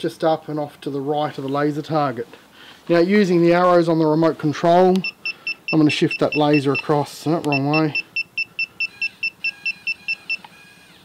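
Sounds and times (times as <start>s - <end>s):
faint motor whine: 6.8s - 11.0s.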